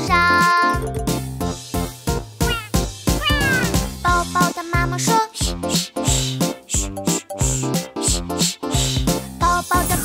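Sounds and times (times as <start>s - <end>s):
upbeat children's song music: 0.0s - 10.0s
cartoon baby bird crying: 2.4s - 3.8s.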